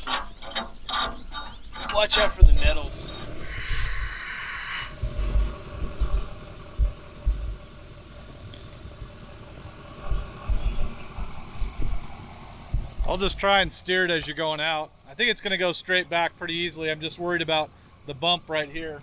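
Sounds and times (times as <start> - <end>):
wind buffeting microphone: 0.8 - 14.3.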